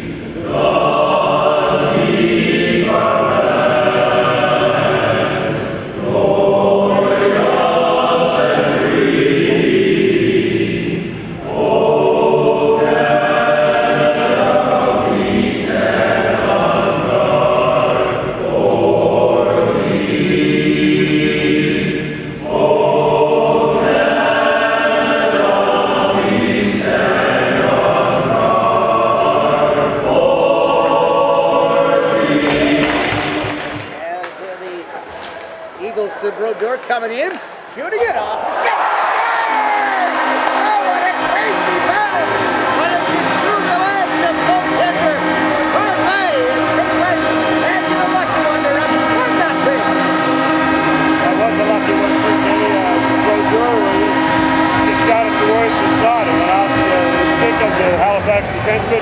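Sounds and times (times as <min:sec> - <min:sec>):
male choir singing: 0:00.0 - 0:34.1, 0:38.1 - 0:59.0.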